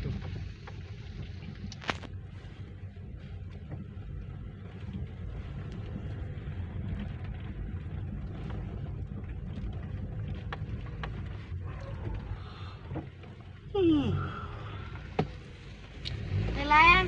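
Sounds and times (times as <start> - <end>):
car engine and road noise: 0.0 - 17.0.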